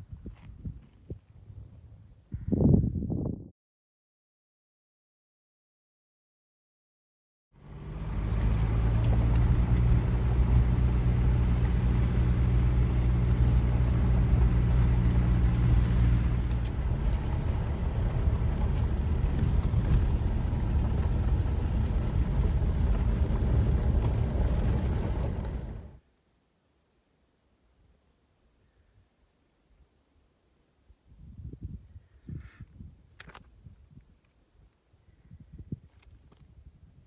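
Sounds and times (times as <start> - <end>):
car engine low hum: 7.6 - 26.0
tyres rumbling on dirt road: 7.6 - 26.0.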